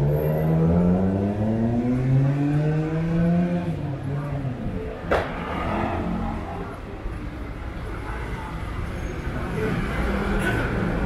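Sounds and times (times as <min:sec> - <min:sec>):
street traffic engines: 0:00.0 - 0:11.0.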